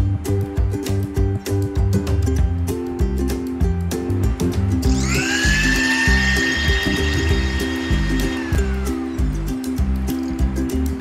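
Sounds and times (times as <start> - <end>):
background music: 0.0 - 11.0
mixer grinder motor whine: 4.9 - 9.3.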